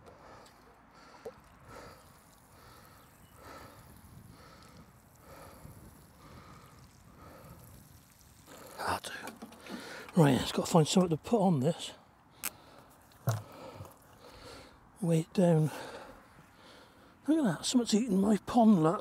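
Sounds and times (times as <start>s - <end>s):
water pouring onto soil: 1.1s - 11.1s.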